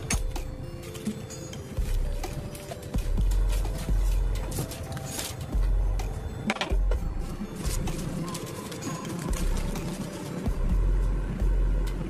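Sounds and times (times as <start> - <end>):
plastic sheet rustling and crinkling: 1.8 - 5.8, 7.5 - 10.5.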